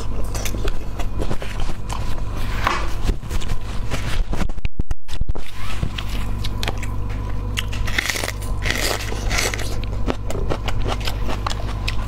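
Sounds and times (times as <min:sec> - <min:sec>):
chewing and crunching: 0:00.0 - 0:04.3, 0:05.9 - 0:12.0
steady low hum: 0:00.0 - 0:12.0.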